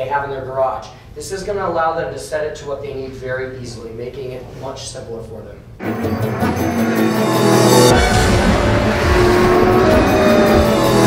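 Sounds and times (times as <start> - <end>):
car engine sound effect: 5.8 - 11.0
outro theme music: 5.8 - 11.0.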